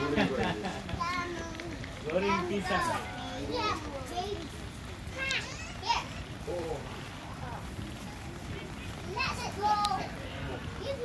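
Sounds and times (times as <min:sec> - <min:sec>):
children shouting: 0:00.0 - 0:06.5
distant voices: 0:00.0 - 0:11.0.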